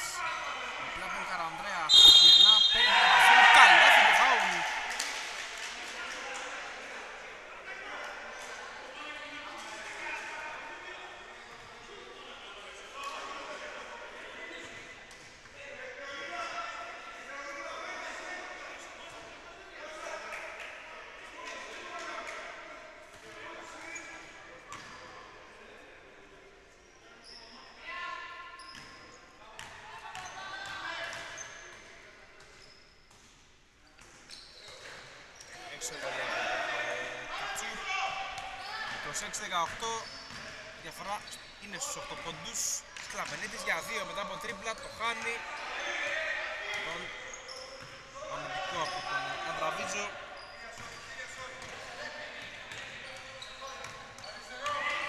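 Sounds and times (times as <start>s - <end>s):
voices calling out: 1.9s - 5.3s.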